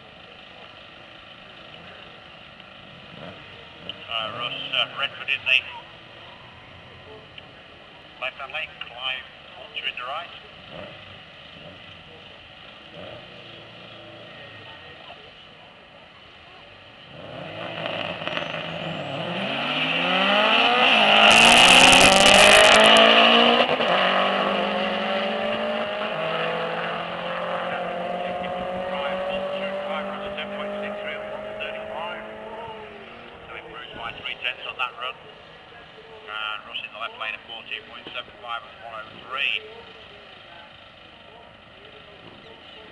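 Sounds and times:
race car engines revving: 0.0 - 42.9.

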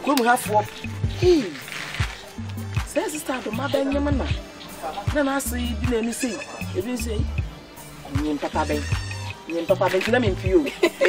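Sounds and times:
background music with low bass: 0.0 - 11.0.

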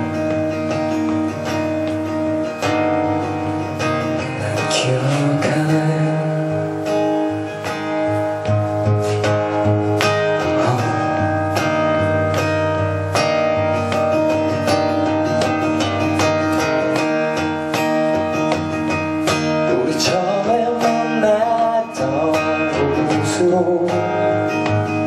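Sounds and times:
acoustic guitar strumming: 0.0 - 25.0.

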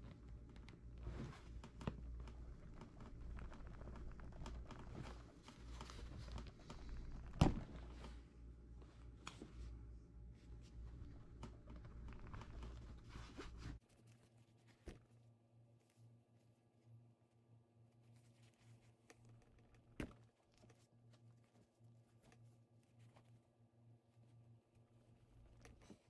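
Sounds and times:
low steady hum: 0.0 - 26.0
rustling and scraping cloth: 0.5 - 15.2.

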